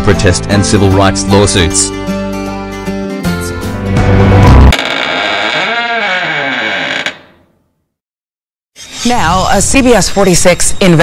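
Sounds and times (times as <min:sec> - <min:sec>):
background music with sweeping pitch: 0:00.1 - 0:04.7.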